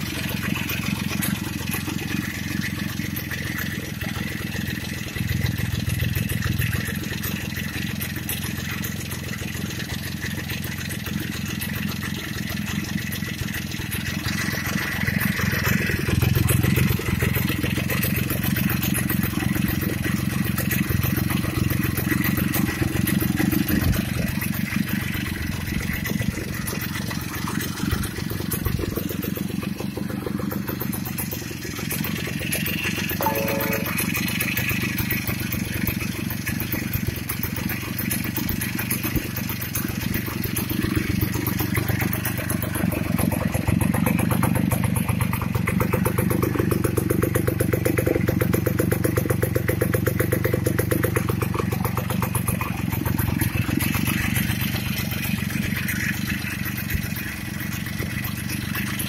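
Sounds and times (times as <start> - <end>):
two-stroke engine idling: 0.0 - 59.0.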